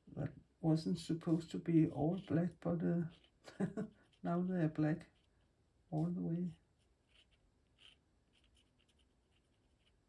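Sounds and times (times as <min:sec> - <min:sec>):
pen nib scratching on paper: 0:01.9 - 0:10.0.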